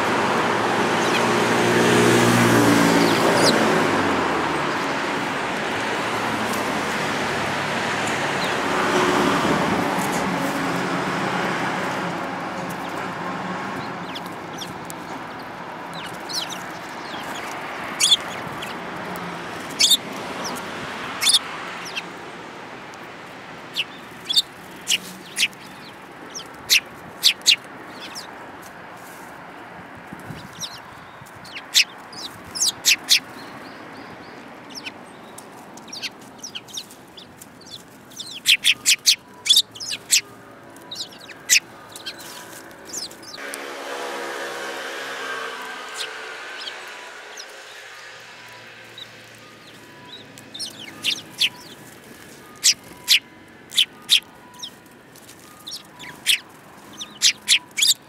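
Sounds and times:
sparrows chirping: 0:00.0 - 0:43.5, 0:44.3 - 0:58.0.

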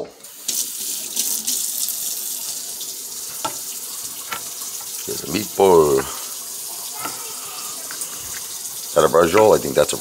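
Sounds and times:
steady water-like hiss: 0:00.4 - 0:09.9.

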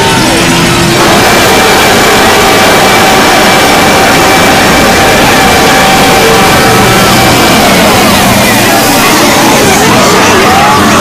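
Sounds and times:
many soundtracks playing at once: 0:00.0 - 0:11.0
steady tones: 0:00.0 - 0:11.0.

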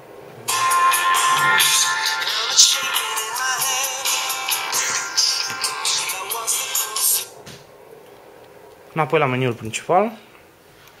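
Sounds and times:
music with singing from phone speaker: 0:00.5 - 0:07.4.

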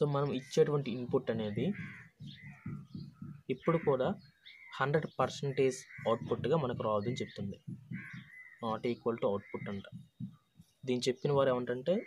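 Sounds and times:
man speaking: 0:00.0 - 0:01.8, 0:04.8 - 0:07.7
faint birds calling: 0:00.0 - 0:12.0.

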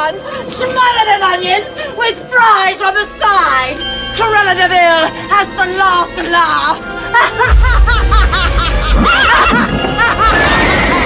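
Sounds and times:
young man laughing villainously: 0:07.2 - 0:11.0.

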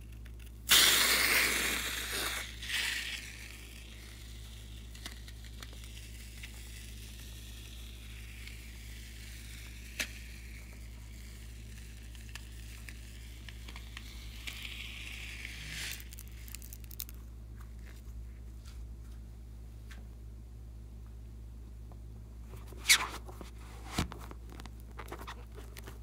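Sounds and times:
foam hissing from nozzle: 0:00.7 - 0:04.6
crackly sputter: 0:11.2 - 0:17.2.

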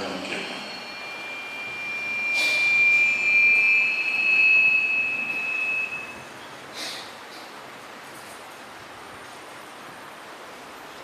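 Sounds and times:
high ringing tone: 0:00.0 - 0:06.4.

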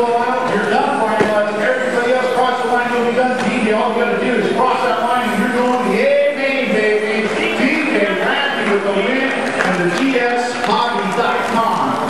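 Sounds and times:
race announcer calling: 0:00.0 - 0:12.0.

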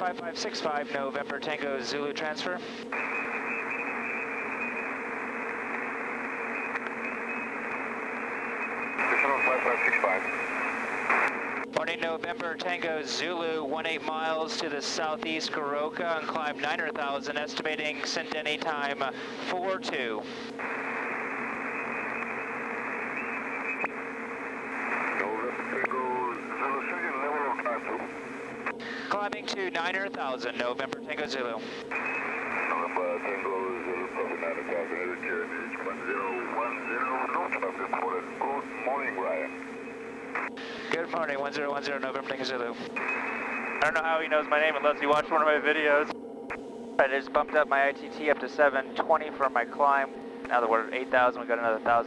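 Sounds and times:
radio static hissing: 0:00.0 - 0:52.0
turboprop engine hum: 0:00.0 - 0:52.0
garbled distorted radio voice: 0:09.0 - 0:10.4, 0:11.8 - 0:20.8, 0:24.8 - 0:28.1, 0:28.8 - 0:39.5, 0:40.4 - 0:46.1, 0:47.0 - 0:52.0.

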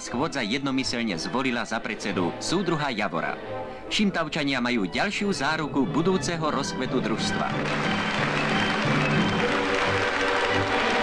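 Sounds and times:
background music: 0:00.0 - 0:11.0
audience applauding: 0:07.0 - 0:11.0.

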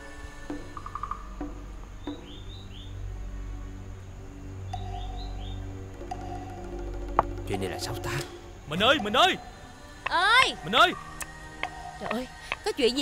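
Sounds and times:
background music with held tones: 0:00.0 - 0:13.0
birds chirping: 0:00.0 - 0:13.0.

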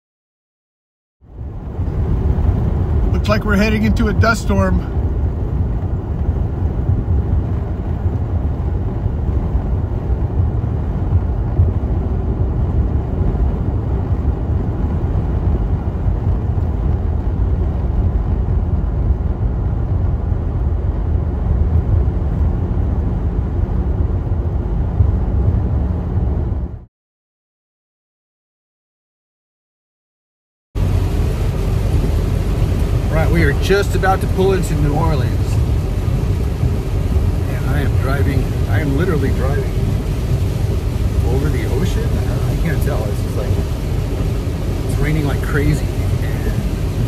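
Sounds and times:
car cabin road and engine noise: 0:01.2 - 0:26.9, 0:30.8 - 0:47.0.

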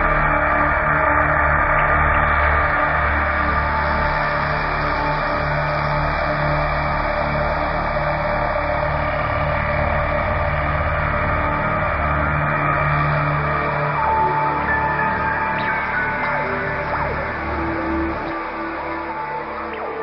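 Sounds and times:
ambient electronic drone music: 0:00.0 - 0:20.0.

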